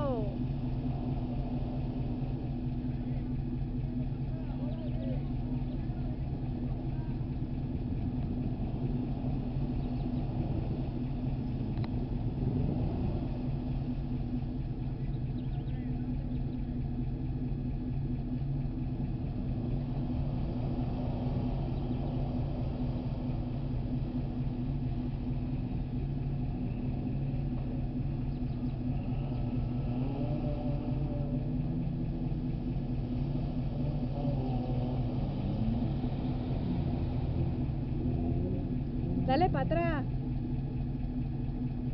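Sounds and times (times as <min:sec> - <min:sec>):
vehicle engine running low: 0:00.0 - 0:41.9.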